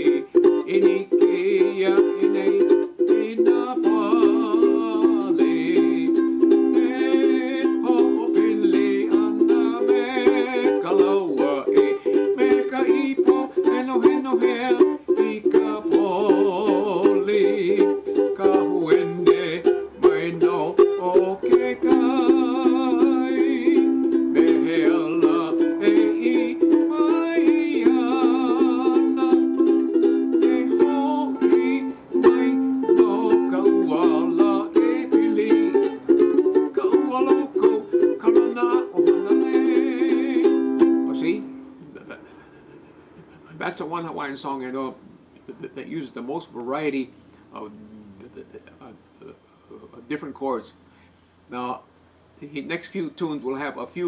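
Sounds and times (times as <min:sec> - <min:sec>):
ukulele strumming: 0:00.0 - 0:42.1.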